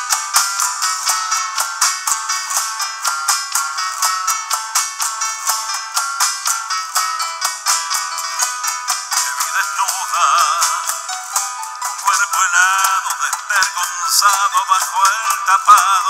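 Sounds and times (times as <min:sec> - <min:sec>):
nylon-string guitar strumming: 0:00.0 - 0:16.0.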